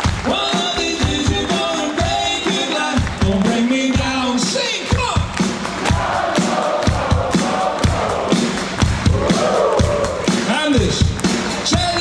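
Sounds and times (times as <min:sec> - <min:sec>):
live rock band playing: 0:00.0 - 0:12.0
steady drum beat: 0:00.0 - 0:12.0
crowd singing along: 0:00.3 - 0:03.7, 0:05.8 - 0:10.1.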